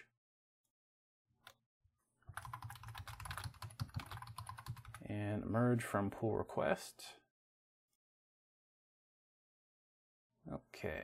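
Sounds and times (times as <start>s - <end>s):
computer keyboard typing: 2.3s - 5.0s.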